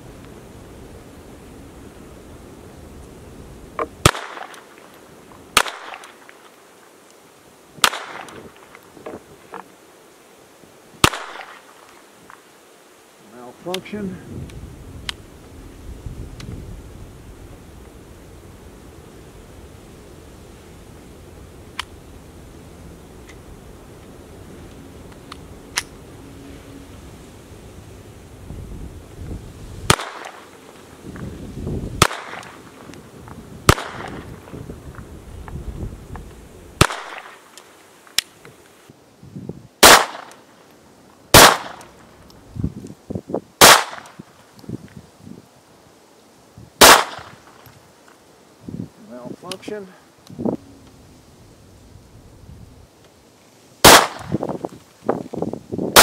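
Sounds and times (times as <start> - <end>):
pistol shots: 4.0 - 4.6, 5.6 - 6.1, 7.8 - 8.4, 11.0 - 11.6, 29.9 - 30.5, 32.0 - 32.6, 33.7 - 34.2, 36.8 - 37.4, 39.8 - 40.3, 41.4 - 41.8, 43.6 - 44.1, 46.8 - 47.3, 53.8 - 54.4
wind rumbling on microphone: 13.6 - 37.2, 38.4 - 39.9, 41.3 - 45.7, 46.4 - 56.0.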